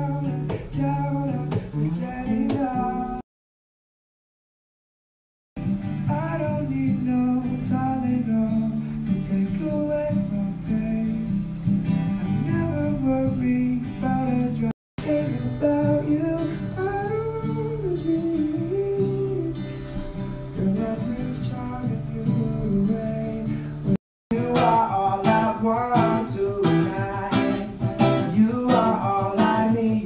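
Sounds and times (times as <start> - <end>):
acoustic guitar: 0.0 - 3.2, 5.6 - 30.0
man singing: 0.0 - 3.2, 6.0 - 11.4, 12.2 - 30.0.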